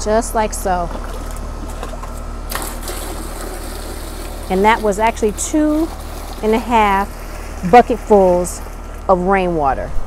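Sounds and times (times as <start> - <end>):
air conditioner pulsing hum: 0.0 - 10.0.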